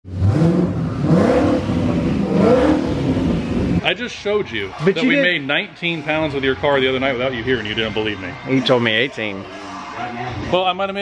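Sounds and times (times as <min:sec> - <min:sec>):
car engine revving loudly: 0:00.1 - 0:03.8.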